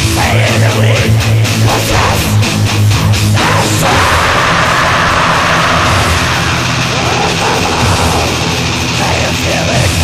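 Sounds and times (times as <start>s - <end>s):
chugging guitar riff: 0.0s - 10.0s
distorted guitars and drums: 0.0s - 10.0s.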